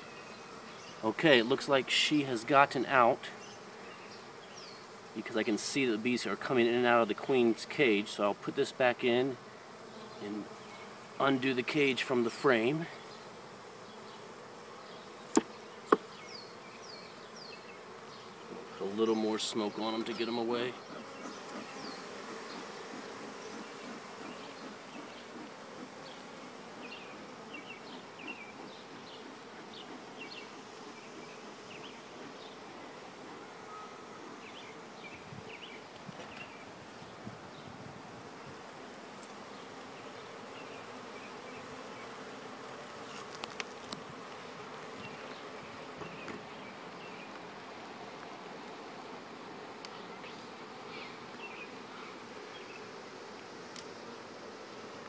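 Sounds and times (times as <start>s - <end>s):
honeybees buzzing: 0.0s - 55.0s.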